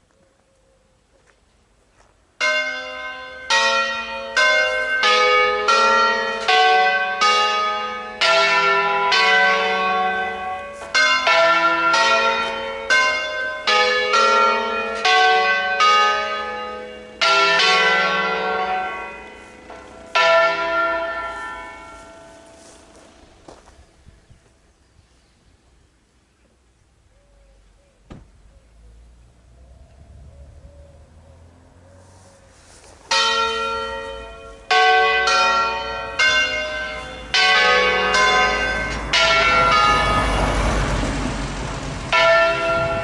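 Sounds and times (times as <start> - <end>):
swinging church bells ringing: 2.4 - 24.1, 33.1 - 43.0.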